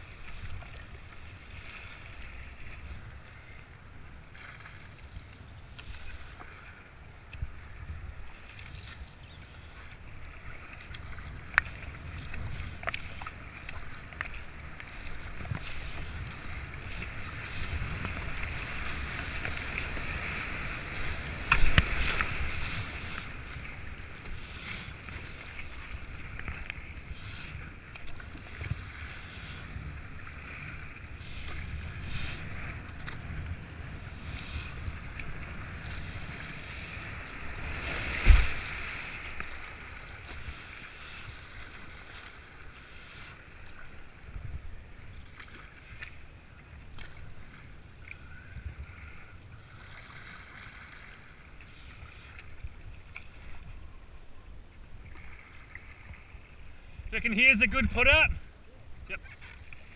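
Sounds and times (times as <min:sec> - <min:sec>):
water splashes: 0:00.0 - 0:54.0, 0:54.7 - 0:59.9.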